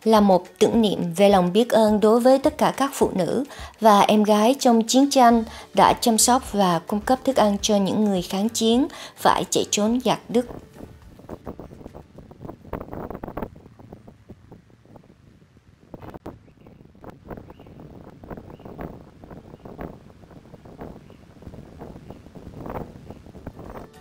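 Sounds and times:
wind buffeting microphone: 0.1s - 24.0s.

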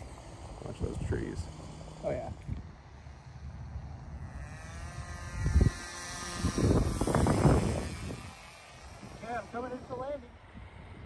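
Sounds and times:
drone propeller whine passing: 0.0s - 11.0s
wind buffeting microphone: 3.7s - 11.0s.

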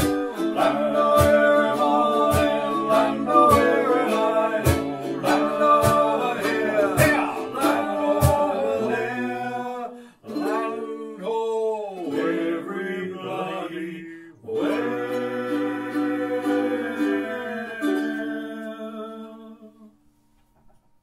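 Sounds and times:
ukulele chords: 0.0s - 19.5s.

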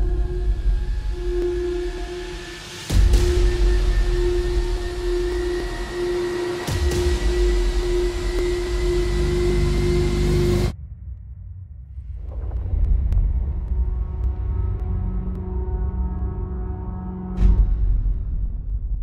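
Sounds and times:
heavy hit: 0.0s - 10.7s
loud held tone: 0.0s - 10.7s
deep rumbling bass: 0.0s - 19.0s.

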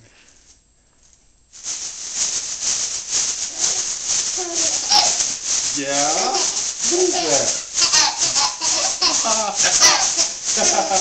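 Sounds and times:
plastic bag crinkling rustle: 0.4s - 11.0s.

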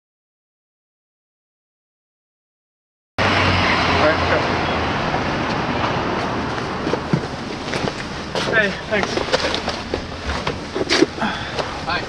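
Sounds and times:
traffic rumble: 3.2s - 12.0s.

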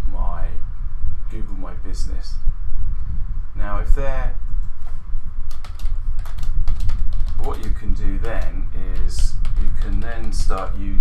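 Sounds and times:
man talking: 0.0s - 0.6s, 1.2s - 2.4s, 3.6s - 4.4s, 7.3s - 11.0s
keyboard typing: 5.5s - 11.0s.

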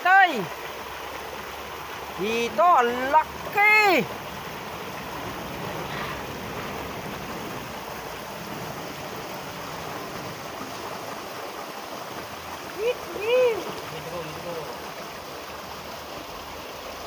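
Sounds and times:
river water rushing over stones: 0.0s - 17.0s.

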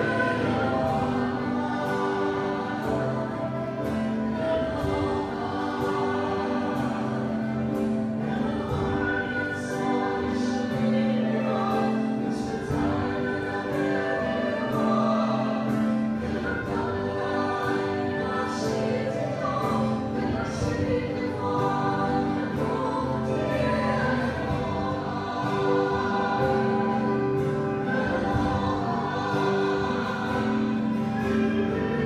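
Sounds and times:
group singing slow hymn-like melody: 0.0s - 32.0s.

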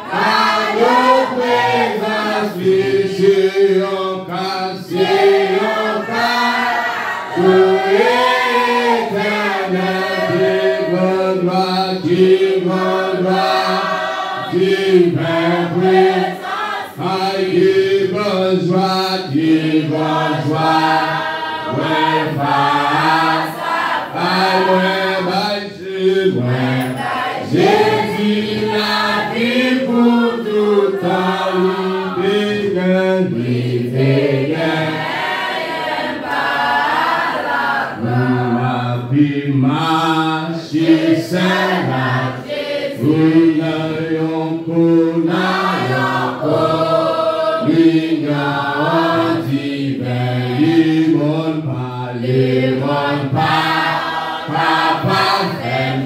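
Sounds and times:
congregation singing a hymn: 0.0s - 56.0s.

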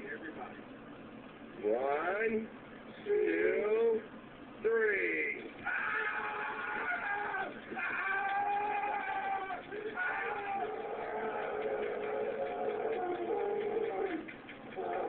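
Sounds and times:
man screaming in pain: 5.7s - 11.6s.

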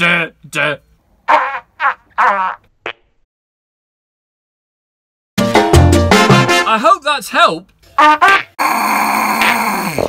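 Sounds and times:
trumpet notes bending in pitch: 8.0s - 8.5s.

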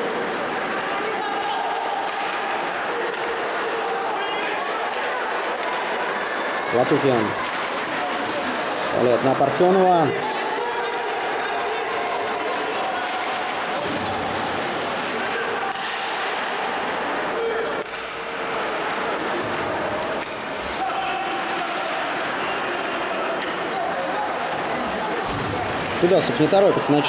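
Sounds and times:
spectators' voices and shouts: 0.0s - 27.0s.

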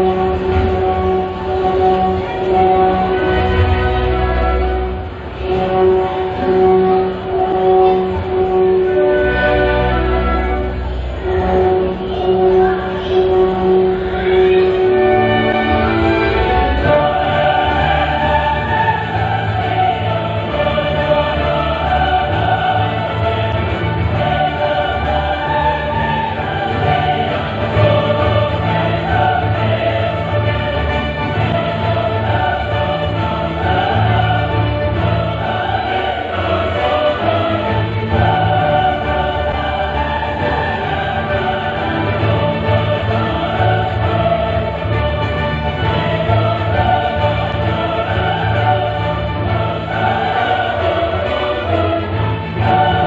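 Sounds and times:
choir singing: 0.0s - 53.0s
orchestra with brass: 0.0s - 53.0s.

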